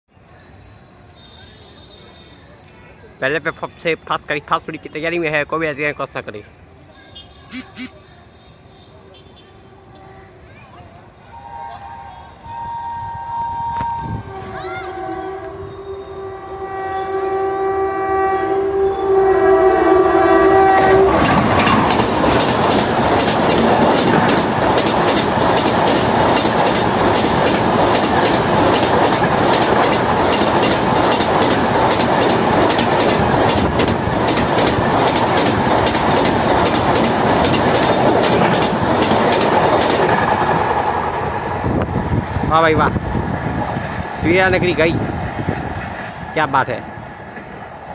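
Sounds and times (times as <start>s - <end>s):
train coaches rushing past: 6.6s - 47.9s
locomotive horn: 7.2s - 8.0s, 11.3s - 21.6s
wheels clacking on track: 20.5s - 46.2s, 47.2s - 47.9s.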